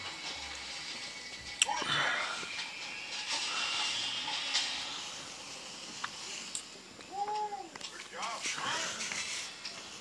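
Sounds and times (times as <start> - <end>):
paper pages rustling: 7.8 - 9.9.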